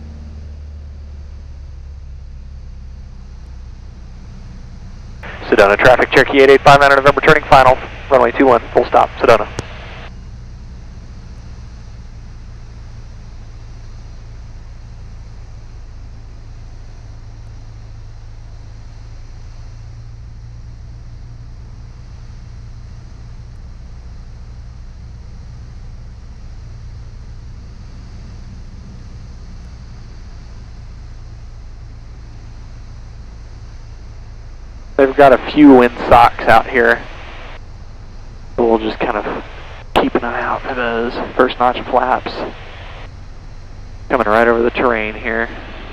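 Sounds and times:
propeller aircraft engine droning: 0:00.0 - 0:45.9.

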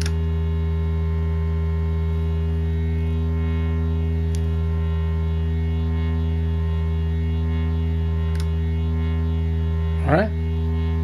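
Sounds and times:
synthesizer drone: 0:00.0 - 0:11.0.

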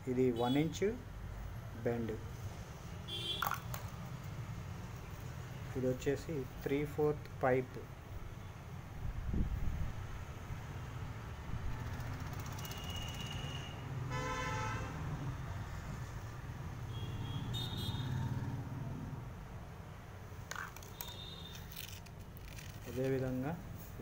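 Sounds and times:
background traffic rumble: 0:00.0 - 0:24.0
vehicle horn toot: 0:12.7 - 0:14.9, 0:16.9 - 0:18.2.

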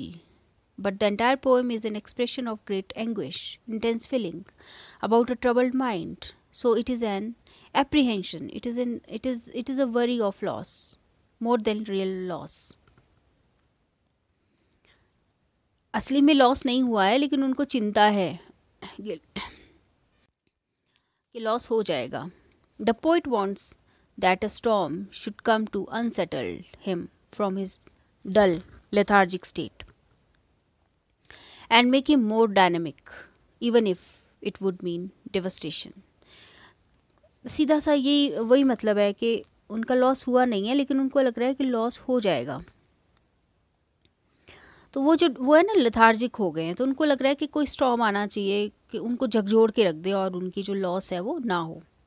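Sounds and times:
person speaking: 0:00.0 - 0:13.1, 0:15.9 - 0:19.8, 0:21.4 - 0:30.0, 0:37.3 - 0:42.8.

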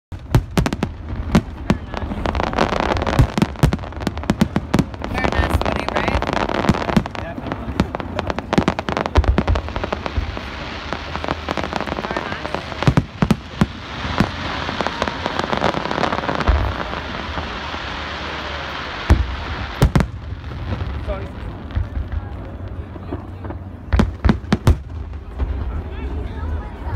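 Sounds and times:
continuous haze of noise: 0:00.1 - 0:26.9
fireworks bursting with sharp bangs: 0:00.1 - 0:26.9.

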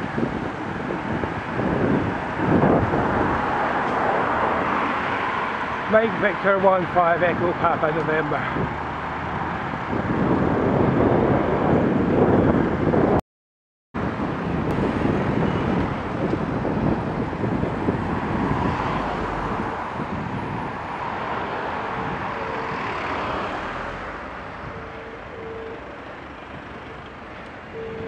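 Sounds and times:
wind on microphone: 0:00.0 - 0:06.4, 0:08.3 - 0:13.2, 0:14.0 - 0:28.0
road and traffic noise: 0:00.0 - 0:13.2, 0:14.0 - 0:28.0.

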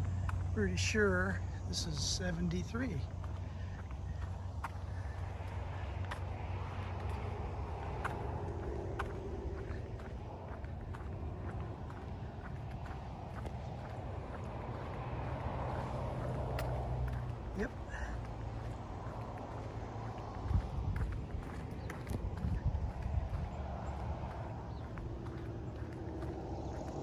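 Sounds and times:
footsteps on concrete: 0:00.0 - 0:27.0
highway traffic hum: 0:00.0 - 0:27.0.

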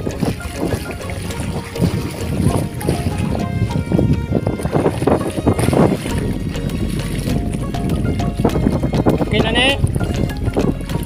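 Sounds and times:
background song: 0:00.0 - 0:11.0
seawater splashing against seawall: 0:00.0 - 0:11.0
wind on microphone: 0:00.0 - 0:11.0.

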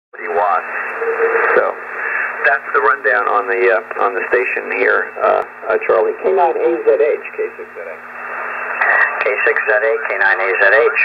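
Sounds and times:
man talking over radio: 0:00.2 - 0:08.0, 0:08.8 - 0:11.0
radio band hiss: 0:00.2 - 0:11.0.

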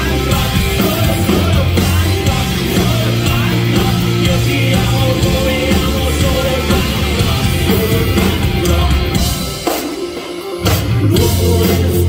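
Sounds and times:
drums: 0:00.0 - 0:12.0
punk rock band playing loud: 0:00.0 - 0:12.0.

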